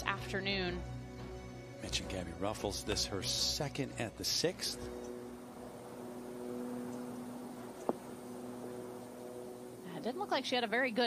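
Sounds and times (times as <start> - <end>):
faint steady hiss: 2.0 - 11.0
low even hum: 3.0 - 11.0.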